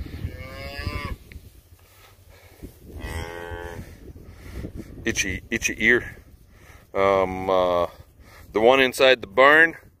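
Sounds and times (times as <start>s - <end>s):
cattle mooing: 0.2s - 1.2s, 3.0s - 3.9s.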